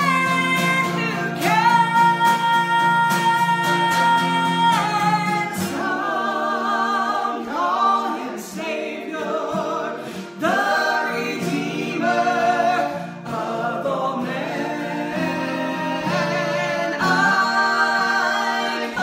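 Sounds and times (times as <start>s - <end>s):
acoustic guitar: 0.0s - 19.0s
male voices singing harmony: 0.0s - 19.0s
woman singing: 0.0s - 19.0s.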